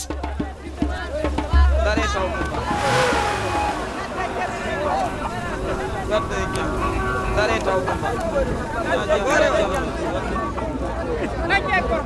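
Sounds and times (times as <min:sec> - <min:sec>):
voices calling out and chattering: 0:00.0 - 0:12.0
low rumble: 0:02.4 - 0:05.0.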